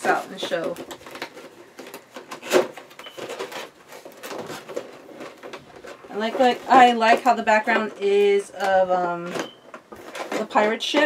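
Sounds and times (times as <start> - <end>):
cardboard box rustling: 0.0 - 7.3.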